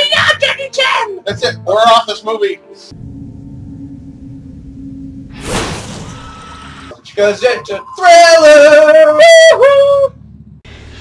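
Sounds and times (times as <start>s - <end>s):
high sung voice: 7.2s - 10.2s.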